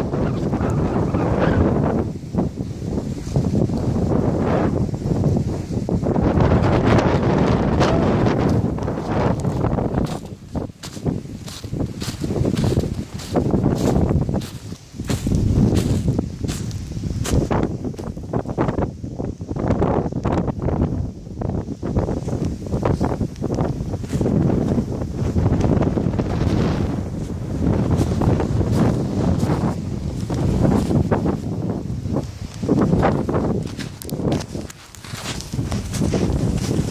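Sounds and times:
wind buffeting microphone: 0.0 - 36.9
fur hood rubbing microphone: 32.7 - 36.9.

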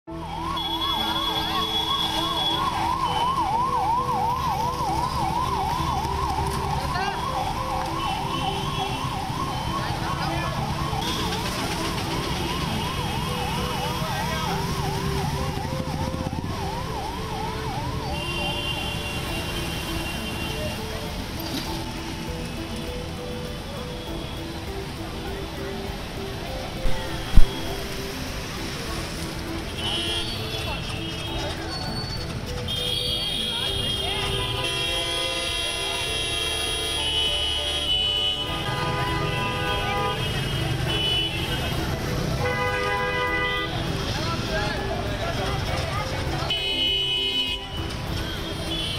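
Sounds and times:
emergency vehicle siren wailing: 0.0 - 48.9
road traffic noise: 0.0 - 48.9
car horns: 29.6 - 44.1, 46.4 - 48.9.

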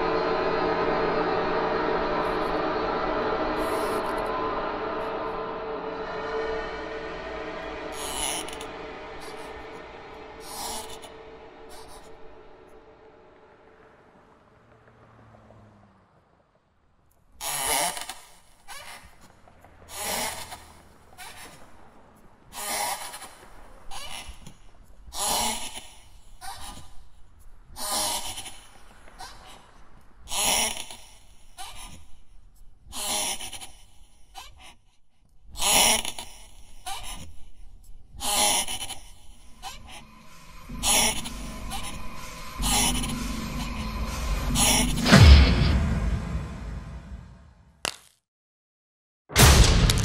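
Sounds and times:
faint low drone: 0.0 - 14.8, 39.2 - 47.6.

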